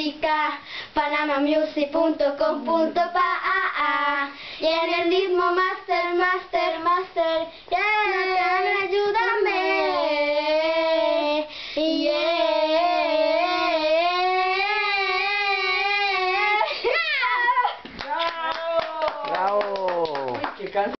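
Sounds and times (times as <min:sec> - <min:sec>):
girls singing a cappella: 0:00.0 - 0:16.9.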